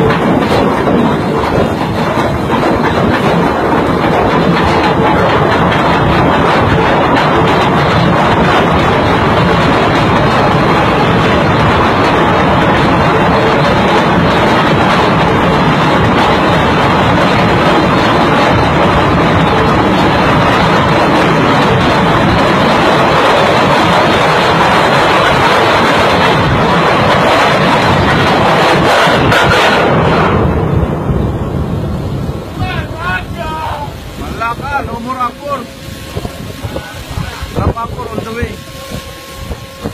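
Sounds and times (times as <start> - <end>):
voices: 32.6 - 38.6.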